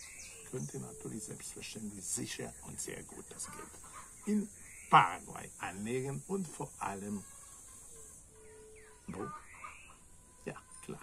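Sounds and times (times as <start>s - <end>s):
high-pitched insect drone: 0.0s - 3.6s, 4.2s - 11.0s.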